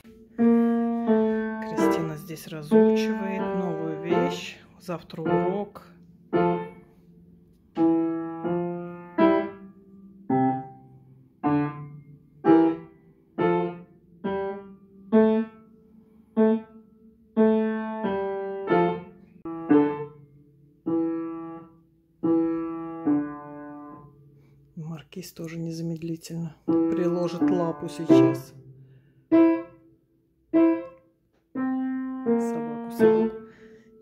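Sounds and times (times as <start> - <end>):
upright piano played slowly: 0.0 - 34.0.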